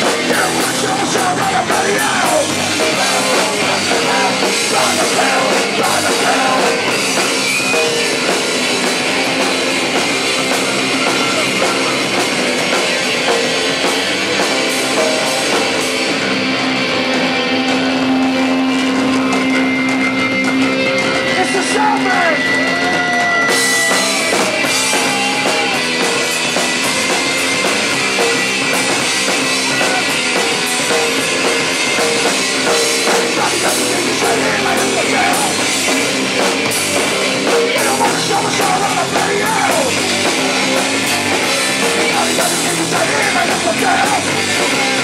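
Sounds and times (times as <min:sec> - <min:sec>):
bass guitar: 0:00.0 - 0:45.0
distorted electric guitar: 0:00.0 - 0:45.0
drum kit: 0:00.0 - 0:45.0.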